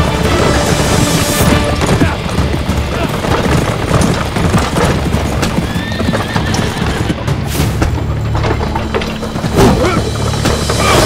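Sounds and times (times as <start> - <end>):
dramatic background music: 0.0 - 11.0
horses galloping: 0.0 - 11.0
horse whinnying: 2.8 - 7.3.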